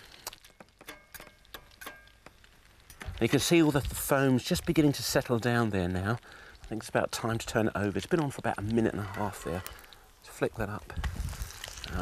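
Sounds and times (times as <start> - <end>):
butter crackling in frying pan: 0.0 - 12.0.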